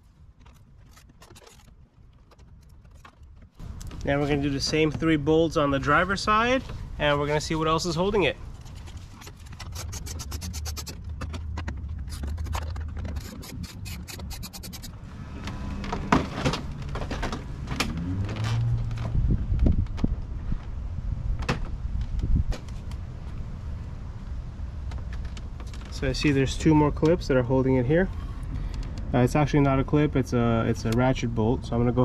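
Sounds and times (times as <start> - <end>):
socket ratchet clicking: 13.2 - 14.9.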